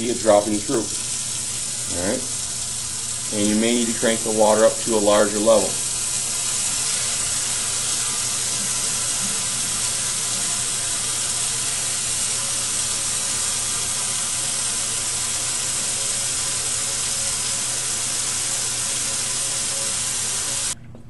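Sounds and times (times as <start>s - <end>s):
faucet running into sink: 0.0s - 20.8s.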